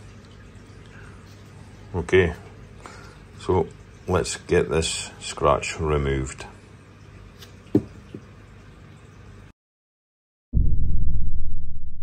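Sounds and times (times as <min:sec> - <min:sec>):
soft thump: 0:07.7 - 0:08.0.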